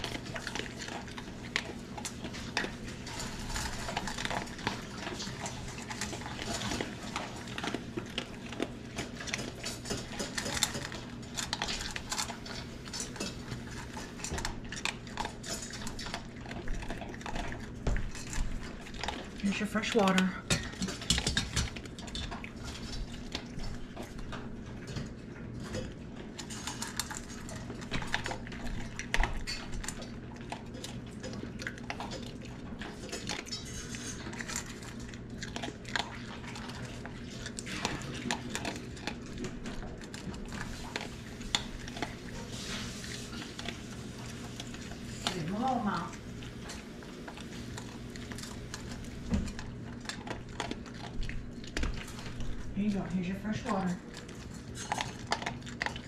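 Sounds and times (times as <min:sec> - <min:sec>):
dog eating kibble from metal bowl: 0:00.0 - 0:56.0.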